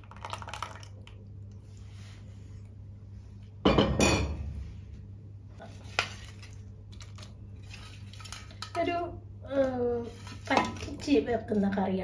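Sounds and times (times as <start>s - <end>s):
colander scraping clay pot: 5.6s - 9.0s, 9.8s - 11.3s.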